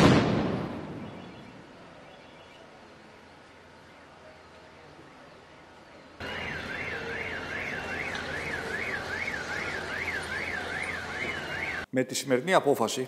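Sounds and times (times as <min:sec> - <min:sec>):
street noise: 0:00.0 - 0:12.0
siren sweeping up and down: 0:06.2 - 0:11.9.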